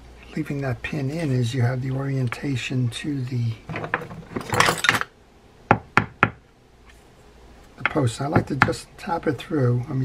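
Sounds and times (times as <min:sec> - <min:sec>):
metal parts knocking on wood: 0:03.7 - 0:05.1.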